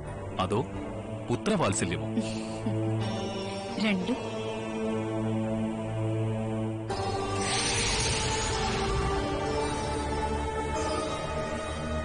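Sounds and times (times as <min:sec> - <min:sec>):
devotional drone music: 0:00.0 - 0:12.0.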